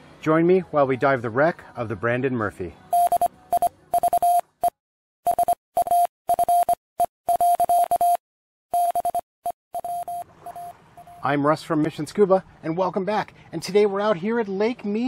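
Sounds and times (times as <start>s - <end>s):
morse code electronic beeping: 2.9s - 11.3s.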